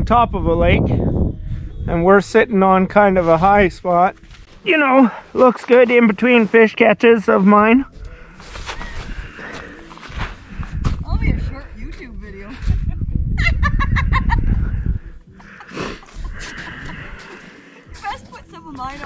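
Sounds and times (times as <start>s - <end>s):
wind rumble on microphone: 0.0s - 4.5s, 7.8s - 17.2s.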